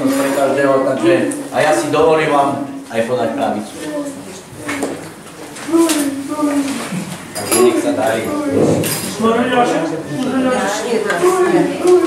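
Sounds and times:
dishes and cutlery clinking: 7.2 - 9.3.

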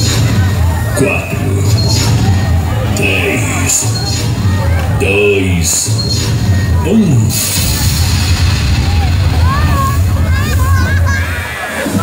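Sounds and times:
crowd whooping: 6.2 - 12.0.

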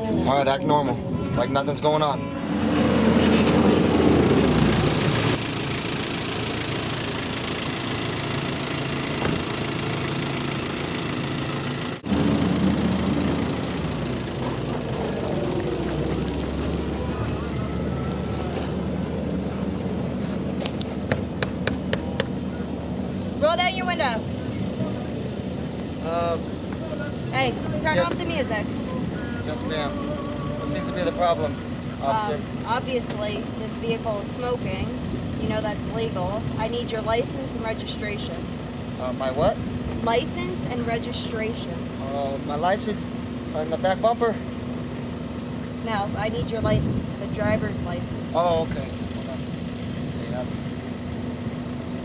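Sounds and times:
vehicle engine idling: 0.0 - 52.0.

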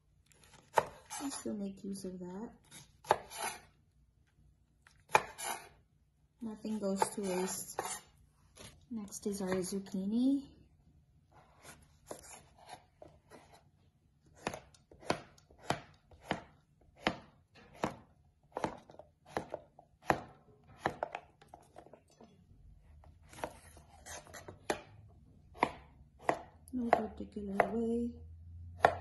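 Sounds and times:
knife cutting on wooden board: 0.4 - 1.4, 2.6 - 3.7, 5.0 - 5.8, 6.8 - 8.8, 11.4 - 13.6, 14.3 - 21.2, 23.3 - 24.8.

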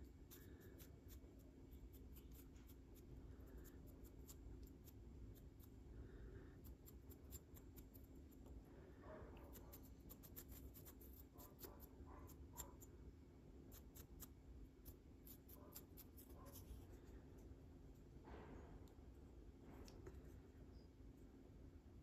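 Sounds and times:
dry brush scratching on model: 0.0 - 5.8, 9.4 - 12.9, 13.7 - 17.6.

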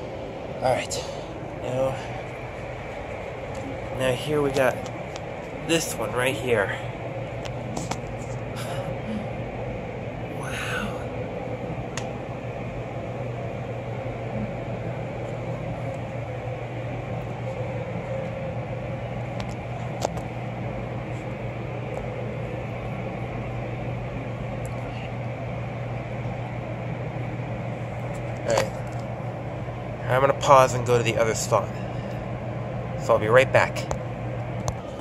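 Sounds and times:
ventilation hum: 0.0 - 35.0.

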